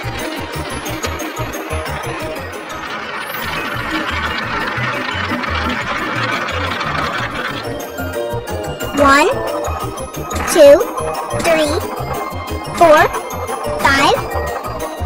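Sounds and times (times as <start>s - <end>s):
marbles rolling on toy tracks: 0.0s - 15.0s.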